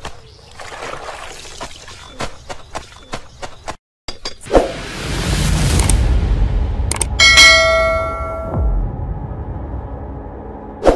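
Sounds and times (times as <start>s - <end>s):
low rumble: 4.8s - 10.9s
sharp clicks: 6.9s - 7.1s
bell ringing: 7.2s - 8.7s.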